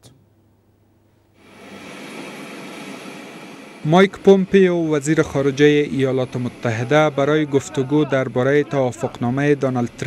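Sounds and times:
faint high whine: 0:01.2 - 0:10.0
jet aircraft noise: 0:01.4 - 0:10.0.

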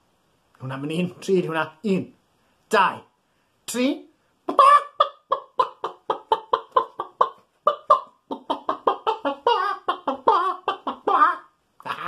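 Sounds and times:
man clucking like a hen: 0:04.5 - 0:12.0.

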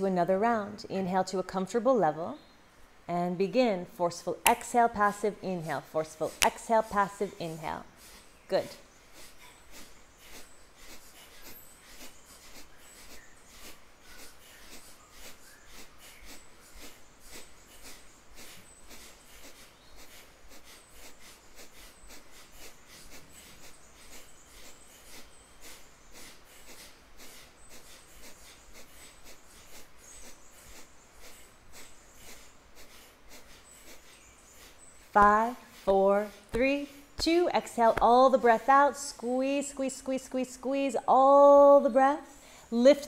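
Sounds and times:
forceful nasal exhales: 0:09.1 - 0:34.9.

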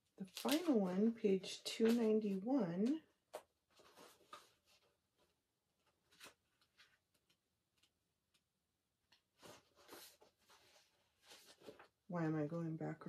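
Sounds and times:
paper pages turning: 0:00.2 - 0:02.4, 0:03.7 - 0:08.5, 0:09.1 - 0:12.0.

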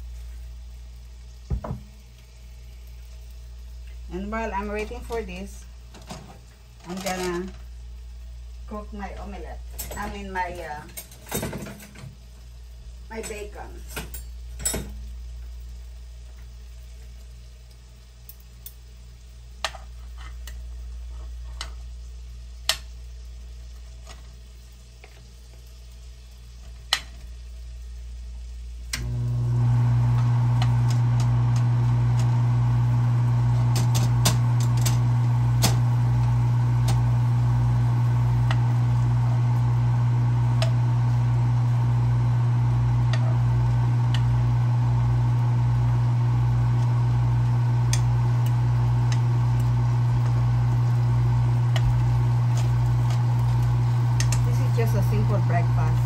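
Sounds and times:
bacon sizzling in a pan: 0:00.0 - 0:11.2, 0:11.8 - 0:56.0
electric motor hum: 0:28.9 - 0:56.0
fat popping and crackling: 0:46.6 - 0:56.0.

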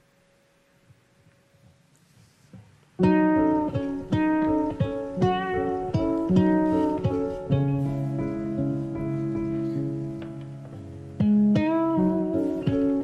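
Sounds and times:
guitar picking melody and chords: 0:02.9 - 0:13.0.

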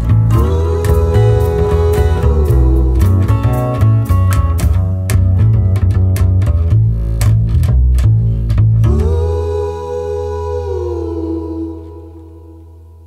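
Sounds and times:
deep heavy bass: 0:00.0 - 0:13.0.

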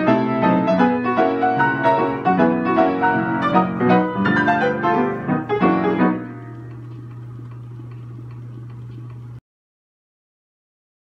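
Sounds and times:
player piano chord: 0:00.0 - 0:07.8
low hum: 0:01.6 - 0:09.4
faint mechanism ticking: 0:03.5 - 0:09.4.

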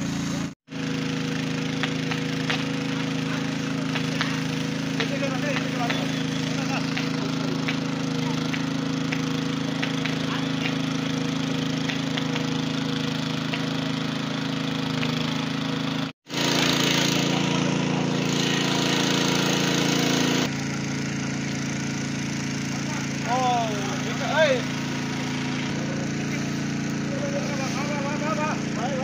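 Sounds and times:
engine-driven pump running: 0:00.0 - 0:29.0
hose spray hissing: 0:00.0 - 0:29.0
sharp crackles: 0:01.6 - 0:13.9.

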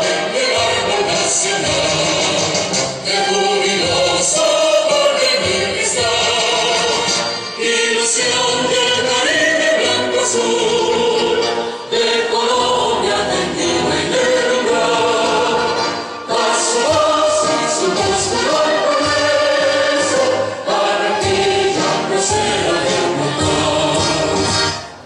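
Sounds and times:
choir singing: 0:00.0 - 0:25.0.

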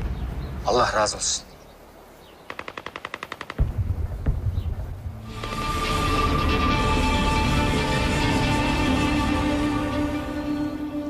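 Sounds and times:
distant machine-gun fire: 0:02.5 - 0:05.0
deep rumble with heavy thuds: 0:03.6 - 0:05.4.

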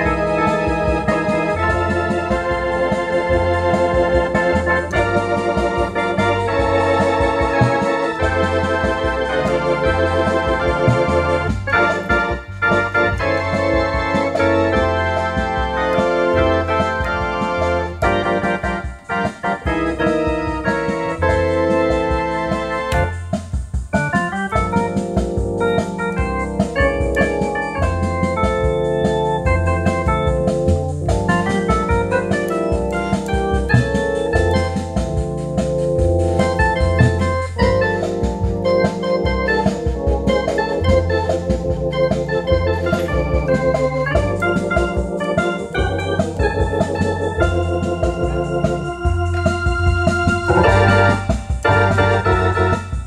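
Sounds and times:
organ playing chords: 0:00.0 - 0:53.0.

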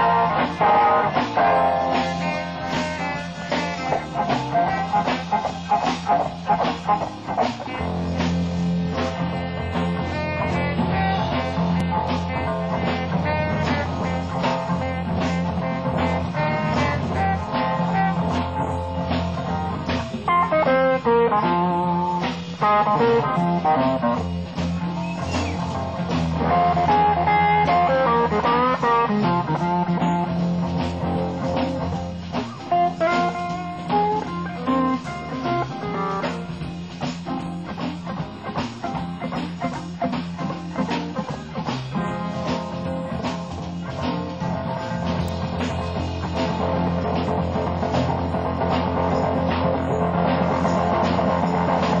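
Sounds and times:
bass line: 0:00.0 - 0:52.0
drum beat: 0:00.0 - 0:52.0
guitar lead: 0:00.0 - 0:52.0.

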